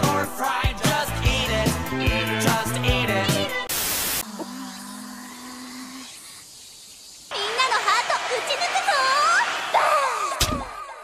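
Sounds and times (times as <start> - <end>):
static noise burst: 3.6 - 4.4.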